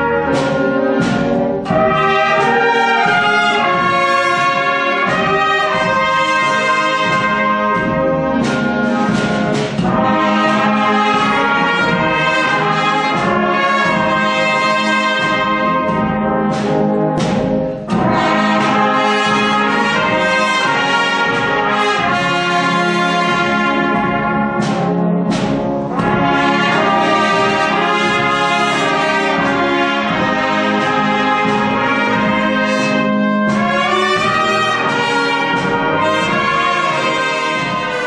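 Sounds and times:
brass band playing held chords: 0.0 - 38.0.

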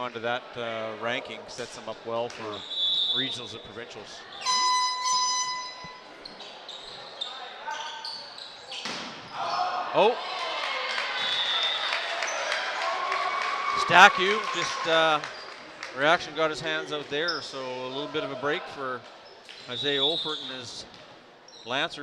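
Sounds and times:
whistle-like tone: 4.4 - 6.0
crowd shouting and cheering: 9.3 - 16.8.

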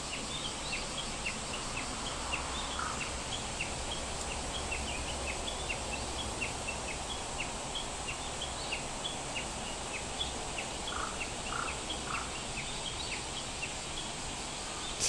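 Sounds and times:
steady hiss: 8.8 - 15.0.

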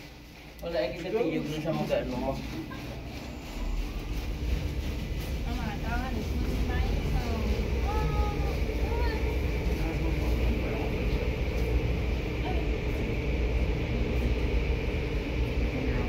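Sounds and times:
car wash machinery rumble: 0.0 - 16.0.

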